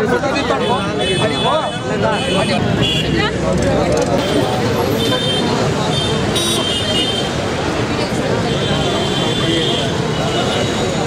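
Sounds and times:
crowd talking: 0.0s - 11.0s
road traffic: 0.0s - 11.0s.

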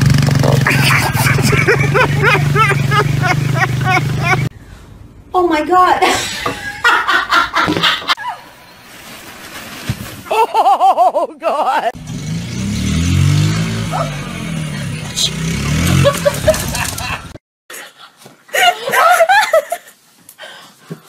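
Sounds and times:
dirt bike engine revving: 0.0s - 4.5s, 12.0s - 17.3s
people laughing: 0.6s - 4.5s, 6.2s - 8.2s, 15.8s - 17.4s, 18.5s - 20.0s.

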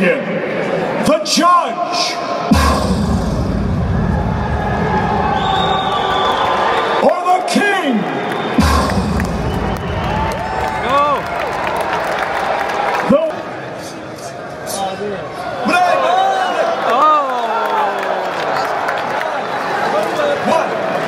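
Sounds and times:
loud bass-heavy music: 2.4s - 5.8s, 8.6s - 11.3s
crowd cheering: 3.5s - 21.0s.

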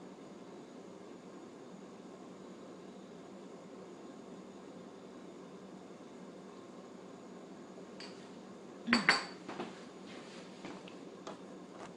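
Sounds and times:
glass clinking on countertop: 8.0s - 8.2s, 8.9s - 9.4s.

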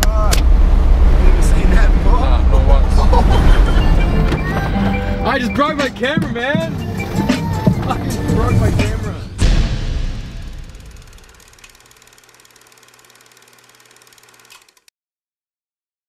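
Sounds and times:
logo sting hit: 9.4s - 11.2s.

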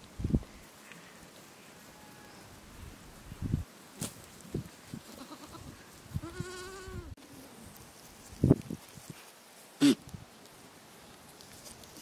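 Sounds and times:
goat bleating: 5.1s - 7.1s.

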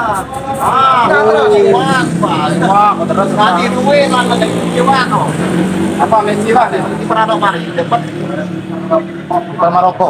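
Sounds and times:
indistinct voices talking: 0.0s - 10.0s.

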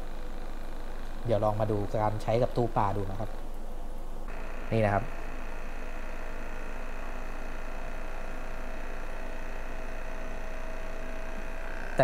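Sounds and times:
aquarium air pump humming: 0.0s - 12.0s.

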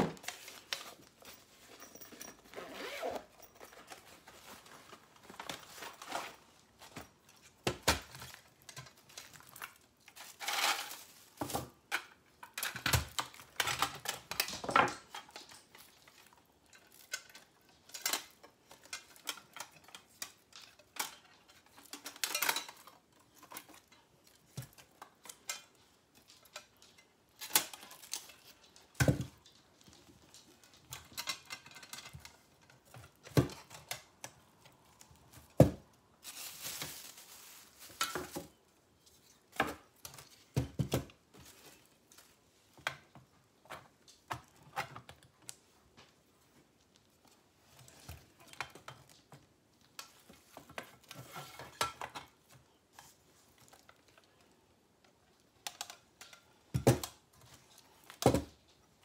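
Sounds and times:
fabric bag rustling: 0.0s - 7.0s, 36.2s - 38.6s.

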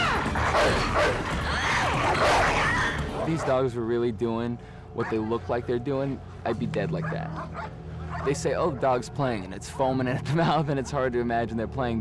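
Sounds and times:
pitched cries: 0.0s - 3.3s
film music score: 0.0s - 12.0s.

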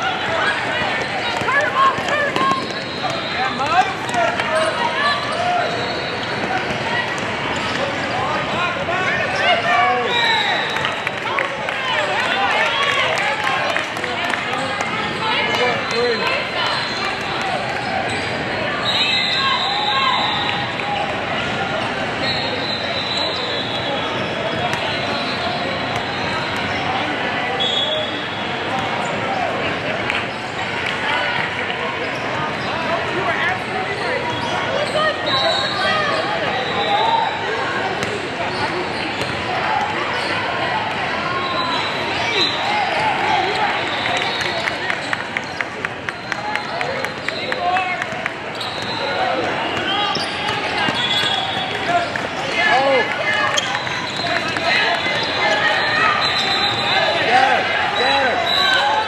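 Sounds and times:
sneaker squeaks: 0.8s - 8.0s, 15.0s - 27.0s, 27.6s - 29.2s, 33.6s - 37.4s, 38.0s - 40.5s, 41.3s - 52.1s, 52.8s - 59.0s.

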